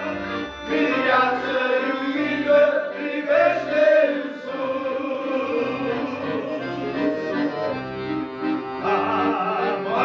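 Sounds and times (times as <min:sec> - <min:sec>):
piano accordion melody: 0:00.0 - 0:10.0
men's voices singing: 0:00.7 - 0:07.6, 0:08.8 - 0:10.0.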